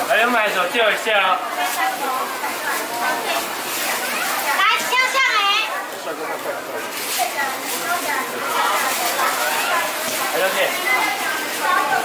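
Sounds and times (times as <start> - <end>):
voices in a crowded hall: 0.0 - 12.0.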